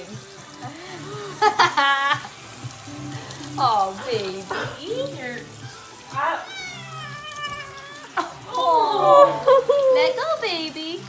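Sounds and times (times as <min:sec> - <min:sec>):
water running from faucet: 0:00.0 - 0:11.0
cat yowling: 0:06.1 - 0:09.5.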